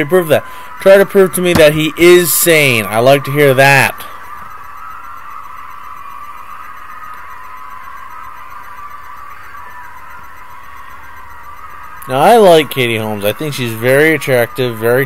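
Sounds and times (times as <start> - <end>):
faint even whine: 0.0 - 15.0.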